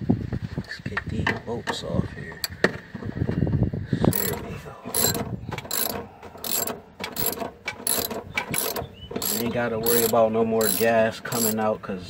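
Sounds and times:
ratchet wrench clicking: 4.1 - 11.6.

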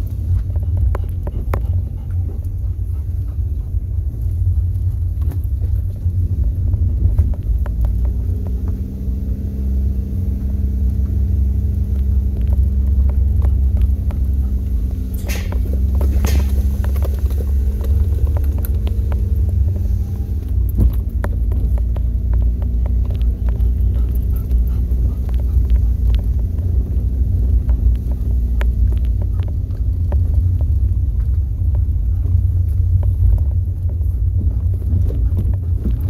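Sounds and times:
tyres crackling on rough road: 0.0 - 36.0
vehicle engine running: 0.0 - 36.0.

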